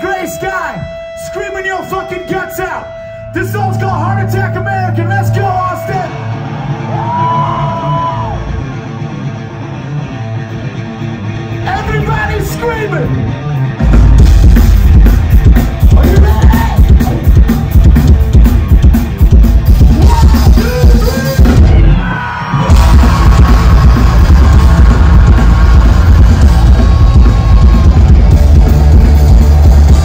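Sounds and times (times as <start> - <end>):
punk rock band playing live: 0.0 - 22.0, 22.6 - 30.0
person yelling vocals: 16.0 - 17.0, 20.0 - 22.0.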